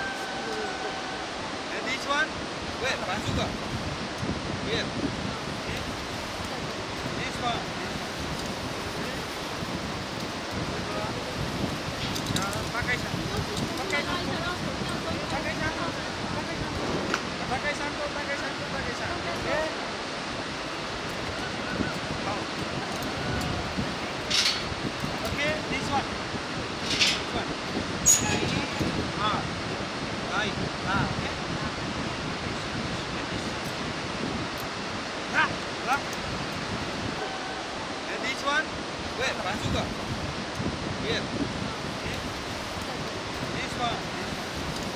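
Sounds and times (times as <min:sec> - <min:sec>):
voices calling and shouting: 0:00.0 - 0:03.6, 0:35.2 - 0:40.2
steady rushing outdoor noise: 0:00.0 - 0:44.9.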